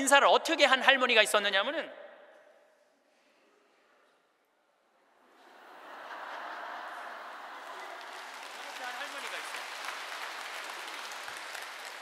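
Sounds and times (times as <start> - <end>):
audience applauding: 5.9 - 12.0.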